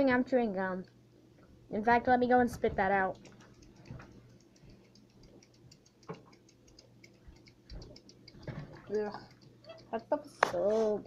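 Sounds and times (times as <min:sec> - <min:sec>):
faint steady ticking: 0:02.7 - 0:10.7.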